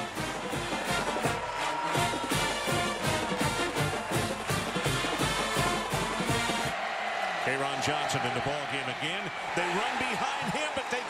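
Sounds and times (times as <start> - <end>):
brass band music: 0.0 - 6.8.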